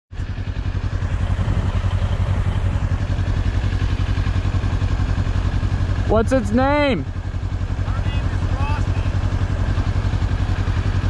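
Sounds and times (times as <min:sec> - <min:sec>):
motorcycle engine idling: 0:00.1 - 0:11.0.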